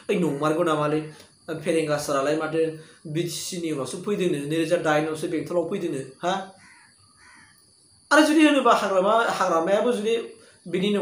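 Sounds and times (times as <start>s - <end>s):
man speaking: 0.0s - 6.5s, 8.1s - 11.0s.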